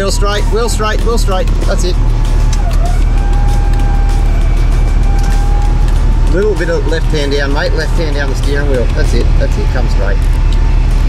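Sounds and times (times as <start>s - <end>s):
electric winch whining: 0.0s - 11.0s
vehicle engine rumble: 0.0s - 11.0s.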